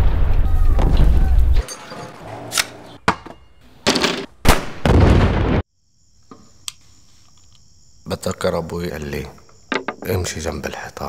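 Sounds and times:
loud explosions: 0:00.0 - 0:01.6, 0:04.4 - 0:05.7
click: 0:06.6 - 0:07.7.

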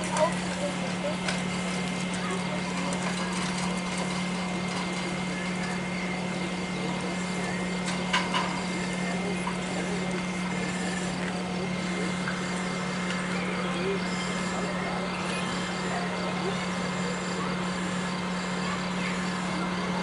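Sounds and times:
pump engine running: 0:00.0 - 0:20.0.

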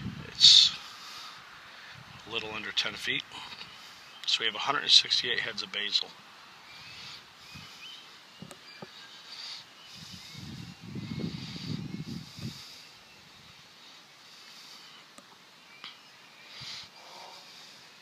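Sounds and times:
soft bird chirps: 0:02.4 - 0:18.0.

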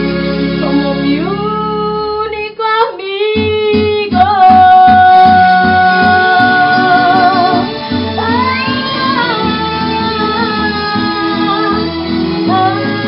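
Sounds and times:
amplified backing music: 0:00.0 - 0:13.0
woman singing into a microphone: 0:00.6 - 0:13.0.

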